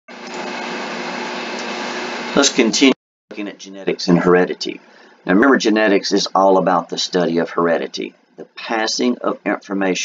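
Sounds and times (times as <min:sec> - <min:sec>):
faint low hum: 0:02.4 - 0:10.0.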